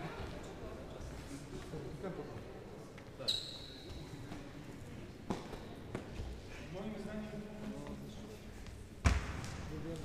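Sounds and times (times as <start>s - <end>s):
murmur of voices: 0.0s - 10.0s
sharp thud echoing in hall: 9.0s - 10.0s.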